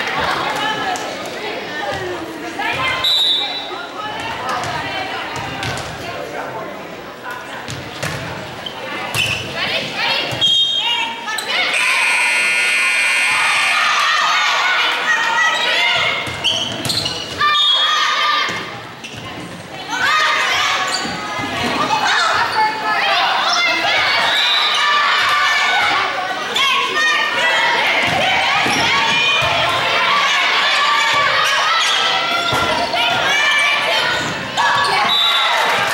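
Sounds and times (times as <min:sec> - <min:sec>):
players shouting: 0:09.6 - 0:16.5, 0:19.8 - 0:35.9.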